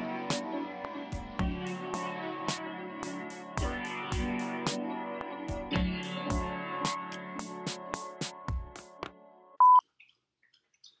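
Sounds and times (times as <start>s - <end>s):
guitar outro music: 0.0s - 9.0s
short electronic beep: 9.6s - 9.8s.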